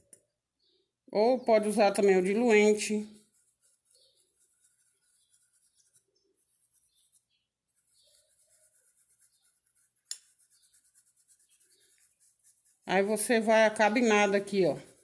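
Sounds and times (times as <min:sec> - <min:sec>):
paintbrush rubbing on fabric: 0:01.7 - 0:15.0.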